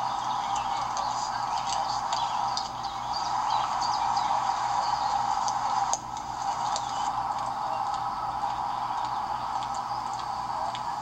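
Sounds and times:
small birds chirping: 0:00.0 - 0:11.0
steady background hiss: 0:00.0 - 0:11.0.

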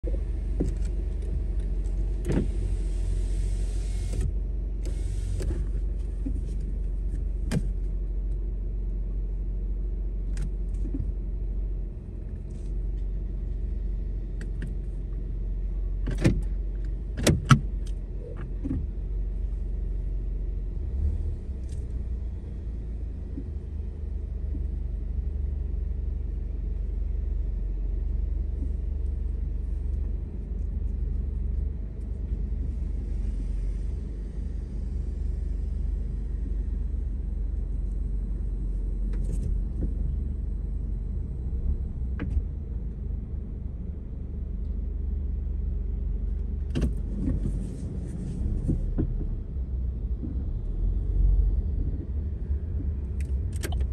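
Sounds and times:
car engine and road rumble: 0:00.0 - 0:53.9.

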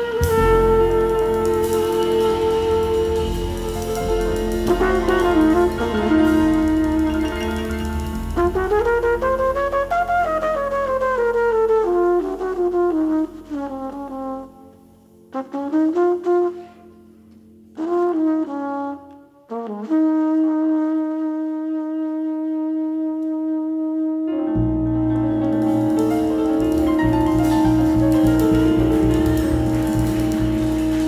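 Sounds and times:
low bass tone: 0:00.0 - 0:14.0, 0:24.6 - 0:31.0
flugelhorn jazz solo: 0:00.0 - 0:31.0.

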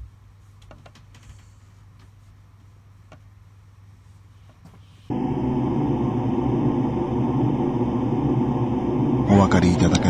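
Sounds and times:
low ominous drone: 0:05.1 - 0:10.0.

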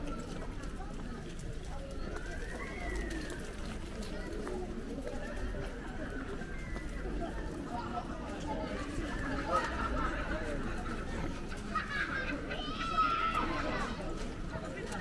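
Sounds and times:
passers-by talking: 0:00.0 - 0:15.0.

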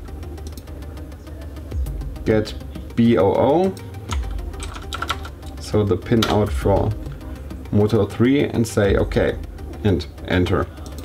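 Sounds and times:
low steady hum: 0:00.0 - 0:11.0
faint clicks: 0:00.4 - 0:00.7.

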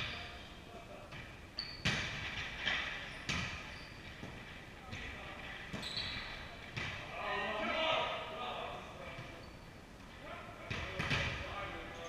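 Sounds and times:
volleyball hits echoing in gym: 0:00.0 - 0:00.4, 0:01.0 - 0:11.9.

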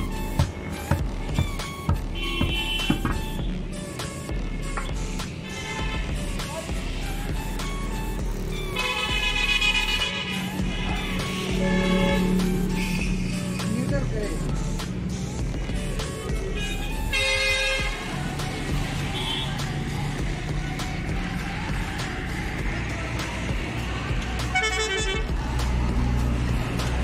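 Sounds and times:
background music: 0:00.0 - 0:27.0
vehicle horn honking: 0:01.9 - 0:03.7, 0:05.4 - 0:06.3, 0:08.7 - 0:13.2, 0:16.6 - 0:18.0, 0:19.1 - 0:19.6, 0:24.5 - 0:25.3.

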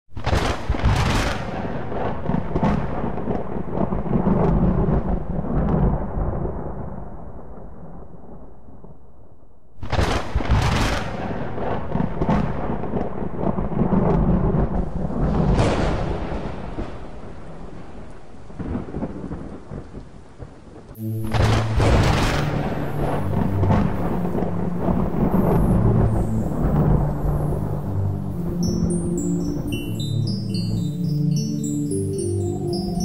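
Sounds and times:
rain: 0:00.2 - 0:08.8, 0:09.8 - 0:31.4
thunder rumbling and cracking: 0:00.2 - 0:08.9, 0:09.8 - 0:29.6
low sustained musical notes: 0:21.0 - 0:33.0.

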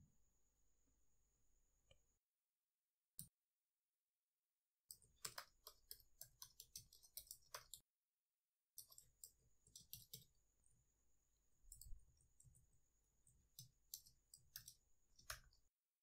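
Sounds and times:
faint typing on keyboard: 0:04.9 - 0:07.9, 0:08.8 - 0:10.4, 0:11.7 - 0:15.7.

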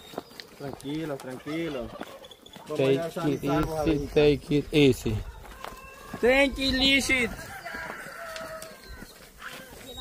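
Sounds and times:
chickens clucking: 0:00.0 - 0:10.0
faint rooster crow: 0:05.1 - 0:09.9.

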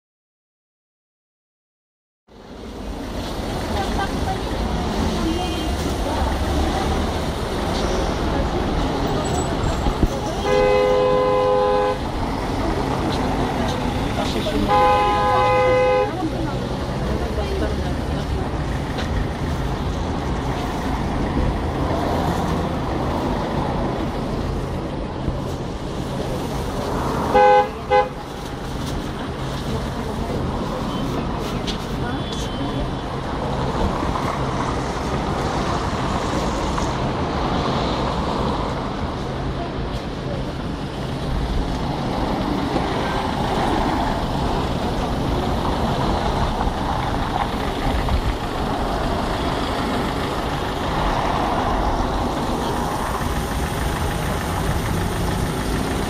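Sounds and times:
street traffic: 0:02.3 - 0:56.0
vehicle horn honking: 0:10.4 - 0:12.0, 0:14.7 - 0:16.2, 0:27.3 - 0:28.2.

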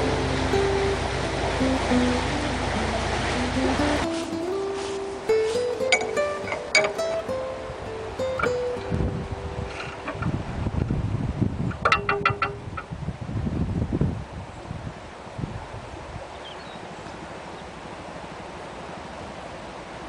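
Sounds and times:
plucked-string melody: 0:00.0 - 0:10.8, 0:11.7 - 0:12.9
steady rushing noise: 0:00.0 - 0:16.2.

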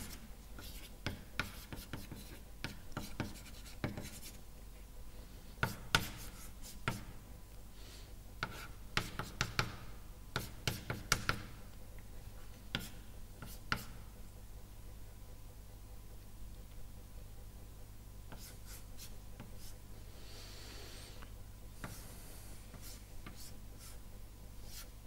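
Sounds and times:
chalk tapping and scraping: 0:00.0 - 0:04.4, 0:05.5 - 0:07.2, 0:08.4 - 0:11.6, 0:12.4 - 0:14.1, 0:18.3 - 0:19.8, 0:21.8 - 0:25.0.

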